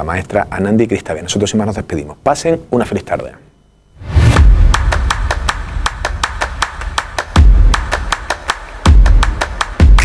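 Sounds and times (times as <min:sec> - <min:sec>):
deep bass hits: 0:04.1 - 0:07.8
fast beat of sharp ticks: 0:04.4 - 0:10.0.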